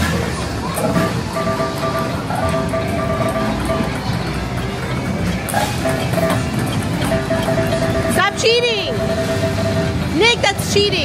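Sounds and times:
game engine sounds: 0:00.0 - 0:11.0
noisy background din: 0:00.0 - 0:11.0
electronic game music: 0:00.8 - 0:10.3
beeping tones: 0:00.8 - 0:10.9.

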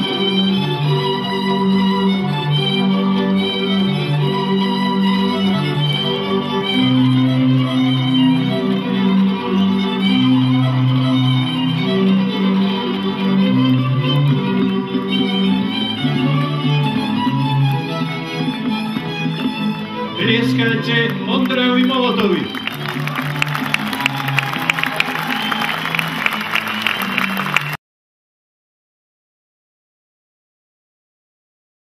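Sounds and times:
layered folk violin music: 0:00.0 - 0:27.8
audience clapping: 0:11.0 - 0:15.1, 0:21.0 - 0:27.8.

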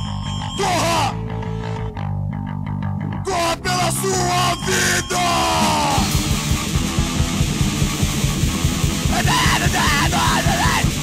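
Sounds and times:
punk hardcore band playing: 0:00.3 - 0:02.0, 0:03.2 - 0:11.0
person shouting vocals: 0:00.6 - 0:01.2, 0:03.3 - 0:06.1, 0:09.1 - 0:11.0.

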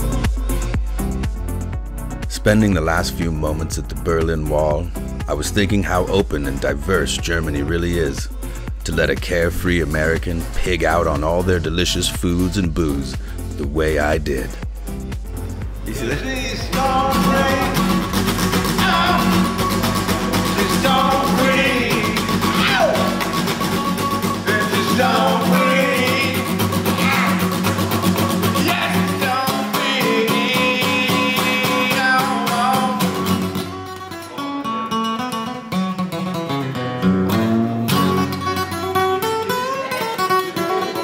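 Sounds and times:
acoustic guitar strummed and picked: 0:00.0 - 0:41.0
person singing over guitar: 0:16.2 - 0:19.6, 0:20.3 - 0:23.2, 0:24.4 - 0:27.6, 0:28.5 - 0:33.4.

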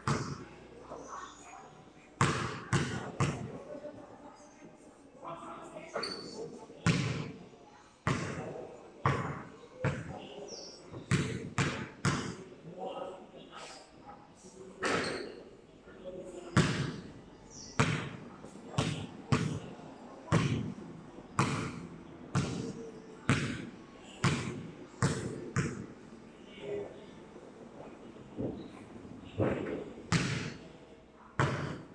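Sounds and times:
basketball bouncing on concrete: 0:17.8 - 0:18.2, 0:18.8 - 0:19.6, 0:23.3 - 0:23.6.

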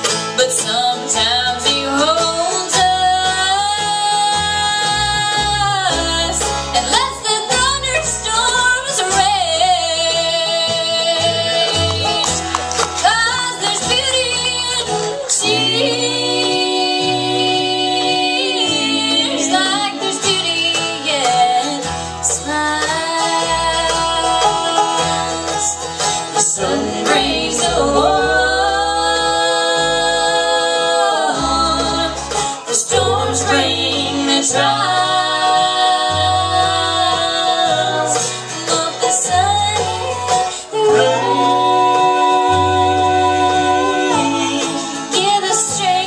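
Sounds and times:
bluegrass band playing: 0:00.0 - 0:46.0
fiddle melody: 0:00.0 - 0:46.0
girl singing: 0:13.0 - 0:25.7, 0:26.4 - 0:46.0.

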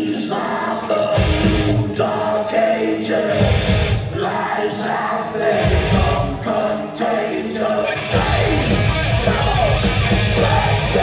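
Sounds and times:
person singing: 0:00.0 - 0:11.0
heavy metal band playing live: 0:01.1 - 0:02.5, 0:03.2 - 0:07.0, 0:07.6 - 0:11.0.

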